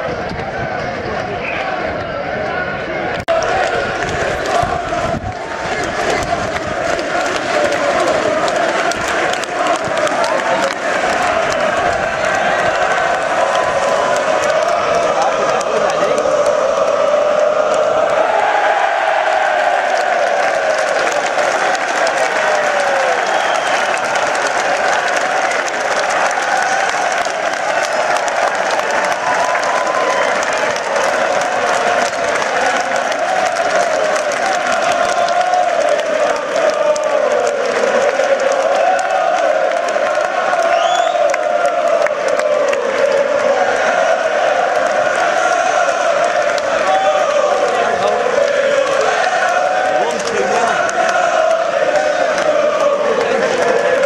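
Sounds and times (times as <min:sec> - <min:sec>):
crowd cheering: 0:00.0 - 0:54.0
football supporters chanting: 0:00.0 - 0:54.0
applause: 0:03.1 - 0:54.0.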